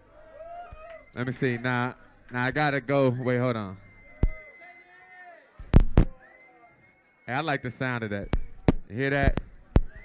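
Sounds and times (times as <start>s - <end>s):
heavy thumps: 5.6s - 6.1s.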